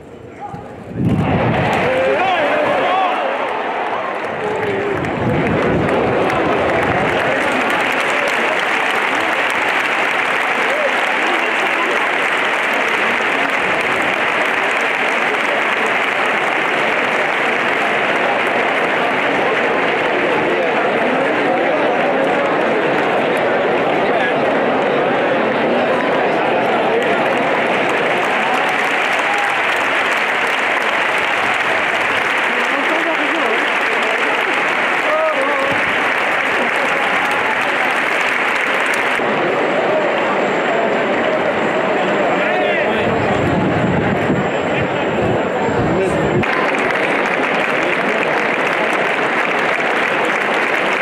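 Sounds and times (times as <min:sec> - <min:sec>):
hubbub of many voices: 0:00.0 - 0:51.0
crowd applause: 0:01.0 - 0:51.0.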